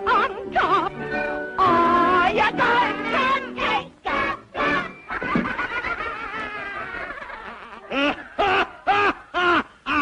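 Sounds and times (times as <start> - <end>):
cartoon thump: 5.2 - 5.6.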